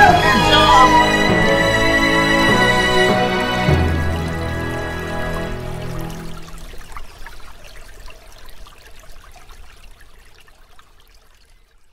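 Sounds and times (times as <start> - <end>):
water trickling and babbling: 0.0 - 11.9.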